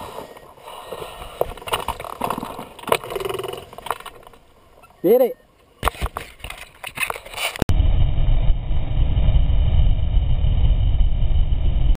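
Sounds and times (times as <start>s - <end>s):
clicks and rustles: 0.4s - 4.5s, 5.8s - 7.7s
wind rumble on microphone: 7.7s - 12.0s.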